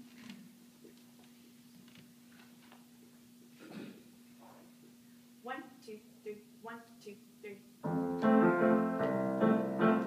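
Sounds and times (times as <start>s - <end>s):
electronic keyboard: 7.8s - 10.0s
upright piano waltz: 7.8s - 10.0s.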